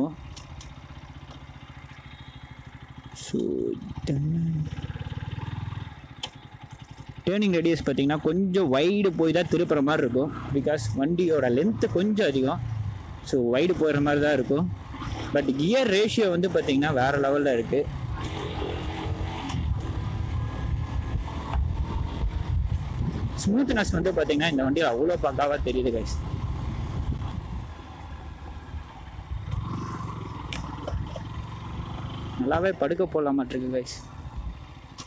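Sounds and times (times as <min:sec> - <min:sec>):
motorcycle engine running: 0:00.0 - 0:35.0
wind rumble on microphone: 0:19.5 - 0:24.4, 0:25.4 - 0:27.7.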